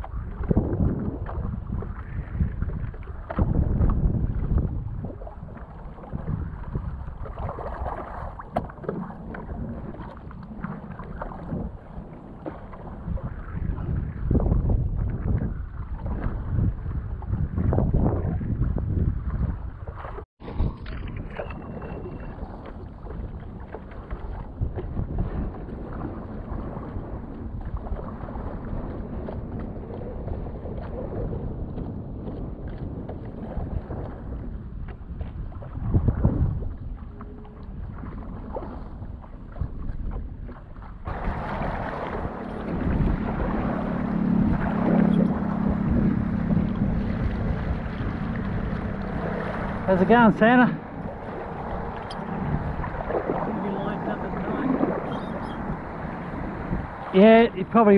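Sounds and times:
paddle strokes: 0:00.0 - 0:17.6, 0:19.2 - 0:57.9
water splashing and lapping: 0:00.0 - 0:57.9
wind on microphone: 0:00.0 - 0:57.9.

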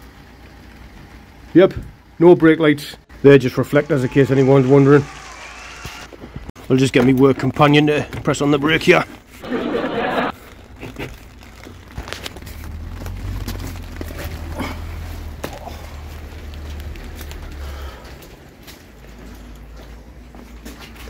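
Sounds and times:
handling clicks and knocks: 0:06.8 - 0:09.2
footsteps on wet paving: 0:10.3 - 0:21.0.

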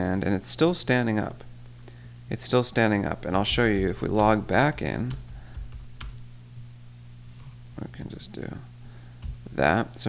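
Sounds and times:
low steady hum: 0:00.0 - 0:10.0
keyboard keystrokes: 0:03.5 - 0:06.2.

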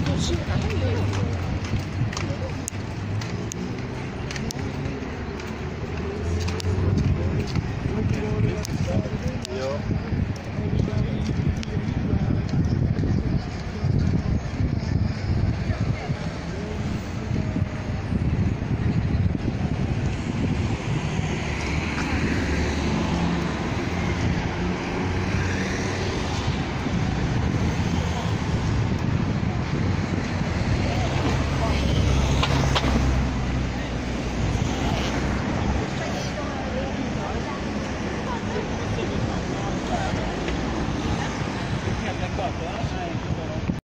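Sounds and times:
people talking: 0:00.0 - 0:20.4, 0:23.0 - 0:43.8
steady low rumble: 0:00.0 - 0:42.0
road traffic: 0:00.0 - 0:43.8.

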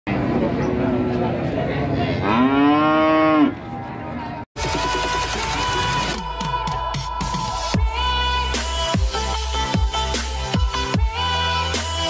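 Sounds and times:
cow mooing: 0:02.2 - 0:03.6.

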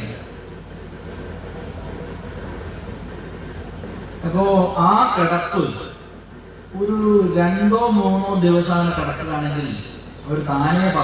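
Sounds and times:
crickets chirping: 0:00.0 - 0:11.0
low steady hum: 0:00.0 - 0:11.0.

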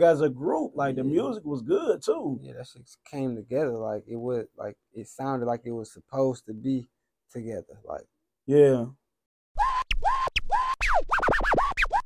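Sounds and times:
turntable scratches: 0:09.6 - 0:12.0.

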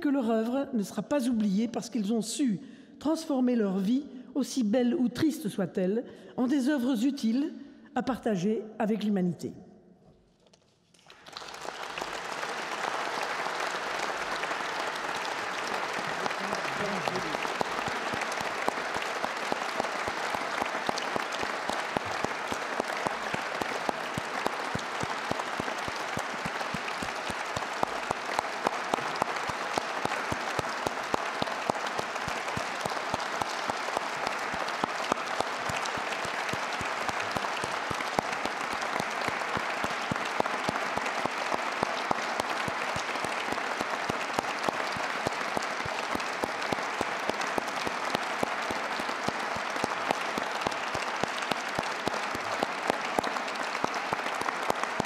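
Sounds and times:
audience applauding: 0:10.9 - 0:55.0.

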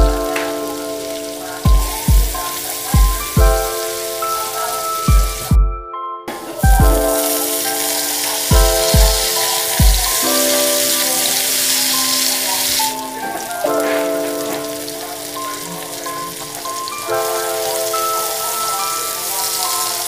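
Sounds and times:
chime-like background music: 0:03.3 - 0:20.0
hot oil sizzling in a wok: 0:06.7 - 0:13.1.

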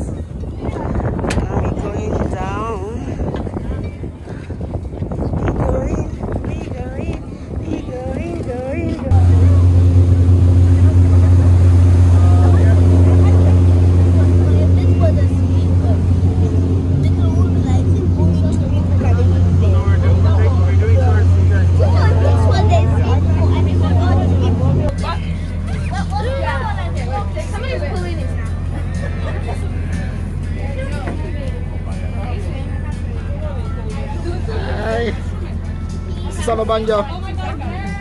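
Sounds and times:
boat engine droning: 0:00.0 - 0:38.0
people's voices: 0:00.0 - 0:38.0.

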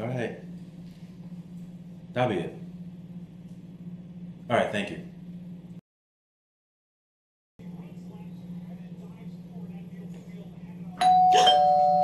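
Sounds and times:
low steady hum: 0:00.0 - 0:05.8, 0:07.6 - 0:12.0
two-tone doorbell chime: 0:11.0 - 0:12.0.

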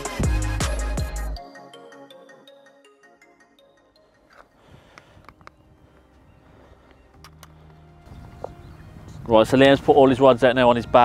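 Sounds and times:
fishing tackle clicks and knocks: 0:04.3 - 0:05.6, 0:06.8 - 0:08.6.

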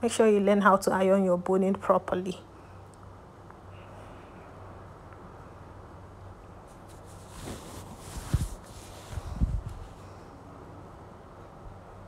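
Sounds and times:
fabric rustling: 0:06.6 - 0:10.2.

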